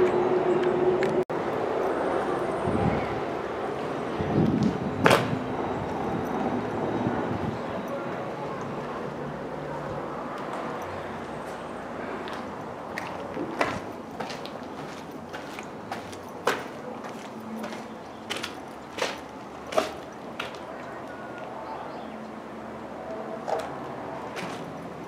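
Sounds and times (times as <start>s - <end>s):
steady background noise: 0.0s - 25.0s
footsteps on gritty concrete stairs: 9.8s - 21.6s, 23.5s - 25.0s.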